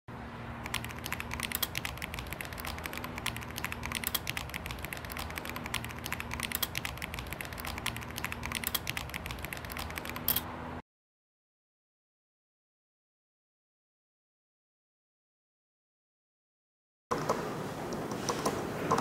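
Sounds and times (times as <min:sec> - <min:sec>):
low hum: 0:00.1 - 0:10.8
keyboard typing: 0:00.6 - 0:10.5, 0:18.0 - 0:19.0.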